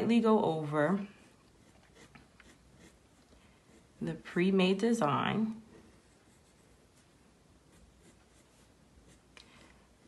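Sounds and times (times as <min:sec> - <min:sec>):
pencil scratching on paper: 0:00.8 - 0:04.2, 0:05.6 - 0:09.4.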